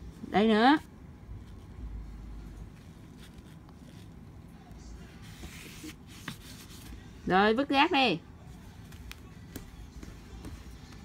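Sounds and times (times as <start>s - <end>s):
low background hum: 0.0s - 11.0s
bare footsteps on hardwood floor: 8.9s - 11.0s.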